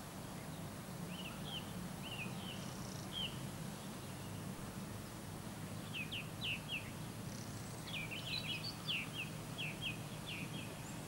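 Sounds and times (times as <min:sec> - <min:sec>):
small bird chirping: 0:05.9 - 0:11.0.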